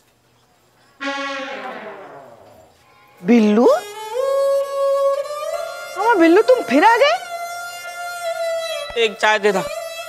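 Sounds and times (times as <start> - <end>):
sustained musical note sting: 1.0 - 2.8.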